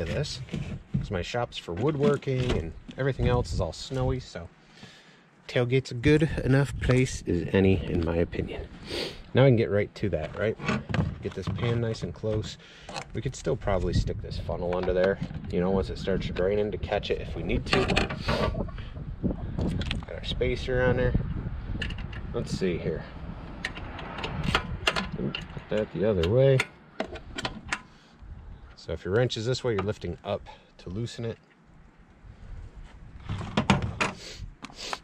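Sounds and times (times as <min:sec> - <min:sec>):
wind rumble on microphone: 0:00.0 - 0:04.4, 0:06.0 - 0:08.9, 0:10.2 - 0:26.4, 0:27.1 - 0:28.8, 0:32.2 - 0:34.6.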